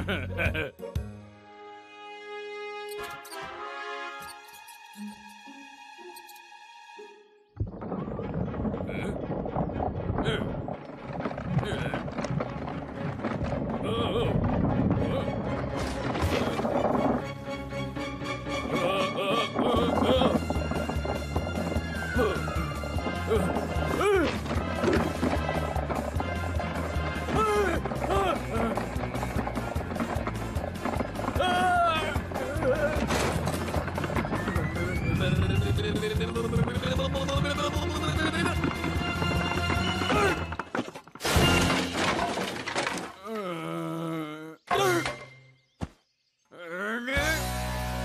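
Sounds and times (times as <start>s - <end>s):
cartoon background music: 0.0s - 10.8s, 13.8s - 40.6s, 47.2s - 48.0s
clip-clop knocking rhythm: 7.6s - 40.8s
cartoon crash with clattering debris: 40.2s - 43.2s
animated character groaning: 43.2s - 45.1s, 46.5s - 47.3s
wordless cartoon vocal: 43.2s - 45.1s, 46.5s - 47.4s.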